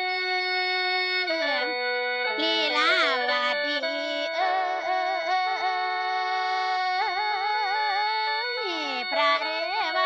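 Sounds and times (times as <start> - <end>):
mouth organ drone and melody: 0.0 - 7.0, 8.3 - 10.0.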